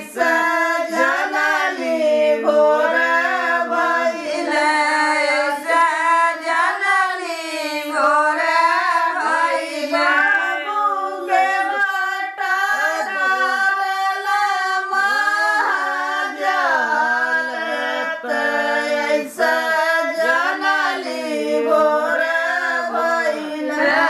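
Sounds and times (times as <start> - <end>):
women singing folk song together: 0.0 - 24.0.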